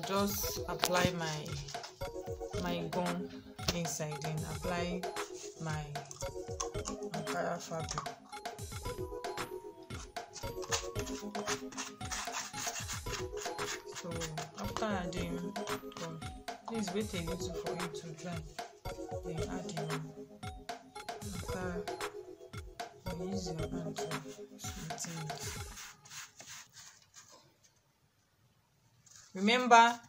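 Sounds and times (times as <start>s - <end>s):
background music with steady beat: 0.0s - 27.0s
wooden stick rubbing on paper: 9.9s - 14.9s, 24.1s - 27.6s.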